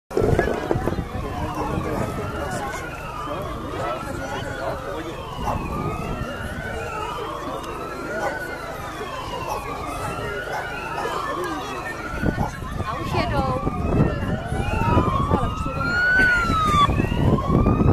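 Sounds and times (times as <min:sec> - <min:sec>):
emergency vehicle siren wailing: 0:00.1 - 0:17.9.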